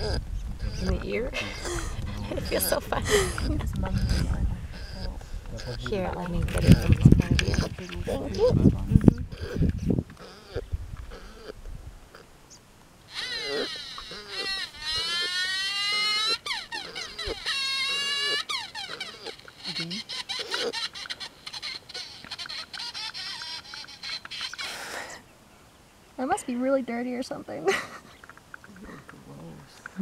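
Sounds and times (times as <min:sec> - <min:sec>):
high-pitched whining cries: 0:13.1 - 0:25.2.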